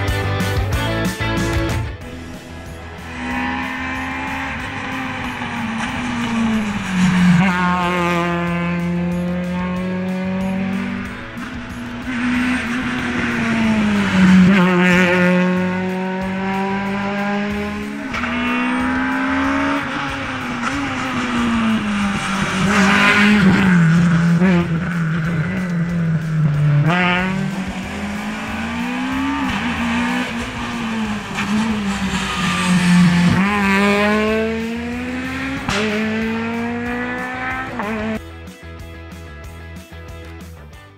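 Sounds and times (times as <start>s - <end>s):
rally car engine revving: 0.0s - 38.3s.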